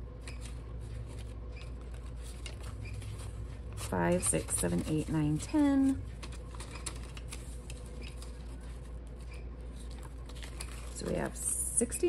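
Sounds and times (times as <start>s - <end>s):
low background hum: 0.0s - 12.0s
banknotes rustling and flicking: 0.2s - 12.0s.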